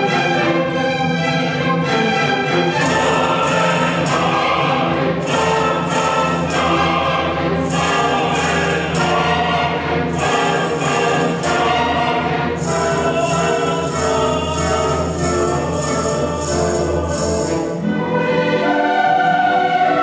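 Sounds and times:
orchestra with choir: 0.0s - 20.0s.

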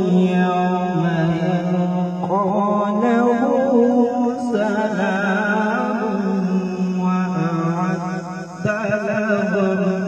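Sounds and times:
man chanting melodic recitation: 0.0s - 10.0s.

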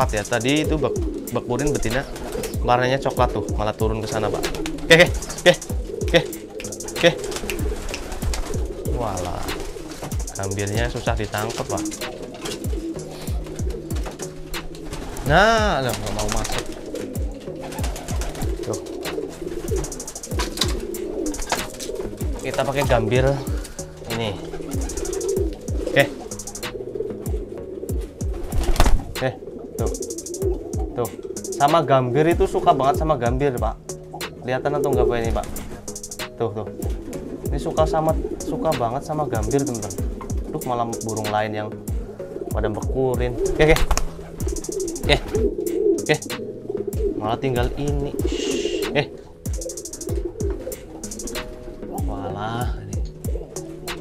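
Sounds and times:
wings fluttering: 0.0s - 52.1s, 53.0s - 54.0s
pigeons cooing: 0.0s - 54.0s.

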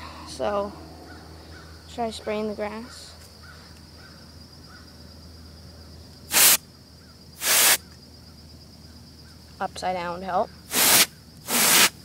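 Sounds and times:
compressed air spray bursts: 6.3s - 6.6s, 7.4s - 7.8s, 10.7s - 12.0s.

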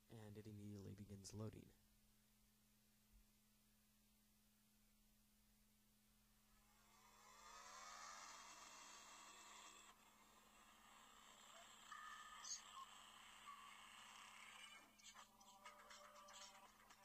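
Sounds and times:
music with regular beat: 15.0s - 17.0s.

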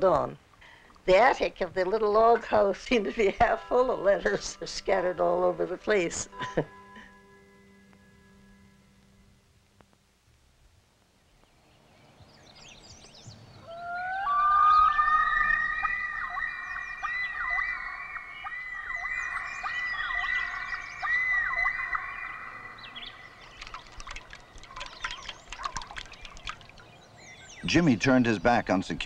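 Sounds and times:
loons wailing: 13.6s - 27.8s.

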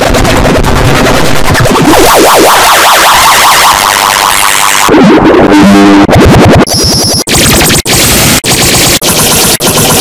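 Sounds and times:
distorted electronic effects: 0.3s - 10.0s.

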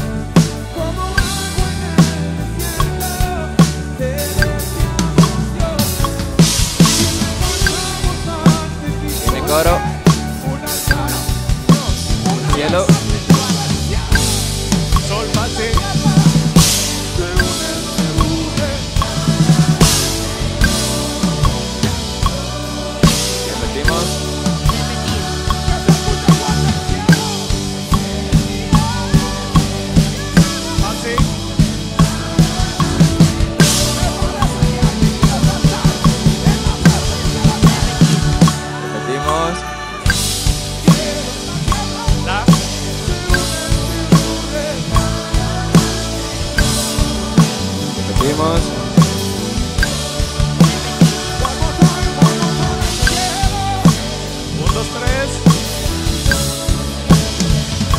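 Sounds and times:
band playing: 0.0s - 57.9s
drum kit playing: 0.0s - 57.9s.

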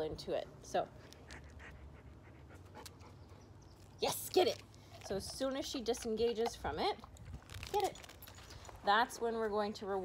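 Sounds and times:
dog panting: 1.0s - 3.5s.

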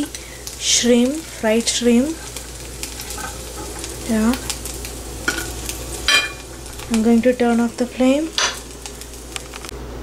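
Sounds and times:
shrimp sizzling in oil: 0.0s - 9.7s
metal spoon stirring in pan: 1.3s - 4.5s.

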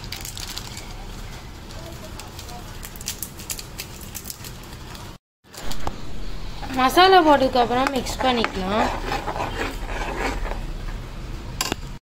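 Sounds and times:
ladle scraping a metal pan: 7.9s - 10.7s.

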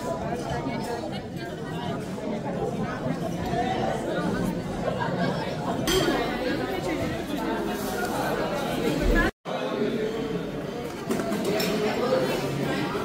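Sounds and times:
people chatting: 0.0s - 13.0s
cutlery and dishes clinking: 5.8s - 6.4s.

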